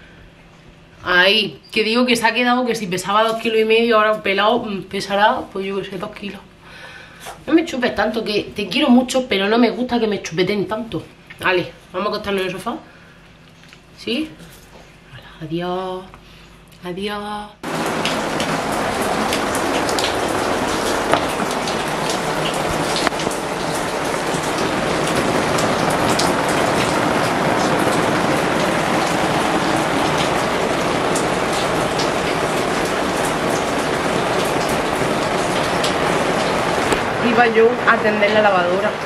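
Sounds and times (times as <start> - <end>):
rain on tiled floor: 17.6 - 39.0.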